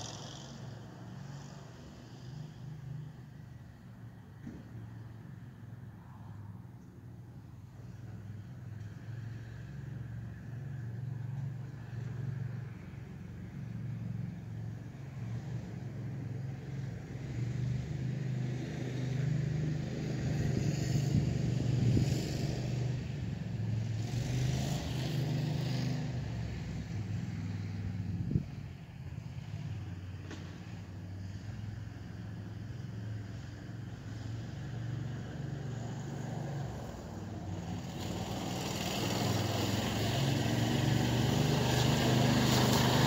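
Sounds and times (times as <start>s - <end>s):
utility vehicle engine running: 35.8s - 43.0s.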